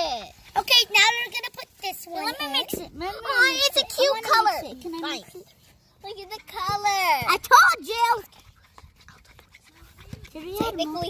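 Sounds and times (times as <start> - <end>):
child making wordless sounds: 0.0 - 8.4, 9.7 - 11.0.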